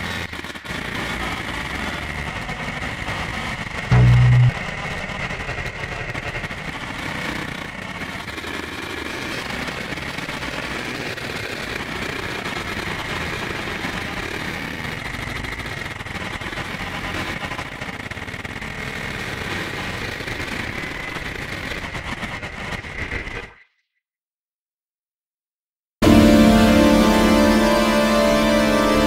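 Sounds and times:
noisy synthesizer music: 3.9 - 4.6, 26.0 - 29.0
steady high tone: 3.9 - 4.6
rumbling synthesizer noise: 3.9 - 4.7.

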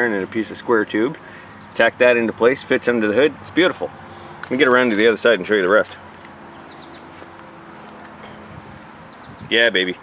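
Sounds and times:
footsteps: 6.1 - 9.1.

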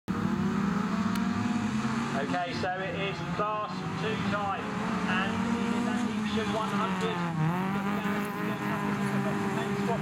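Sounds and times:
race car engines running: 0.1 - 10.0.

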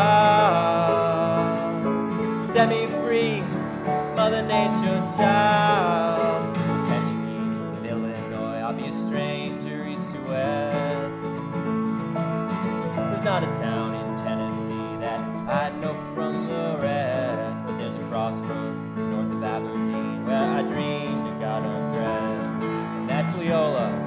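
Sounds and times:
acoustic guitar strummed: 0.0 - 24.0.

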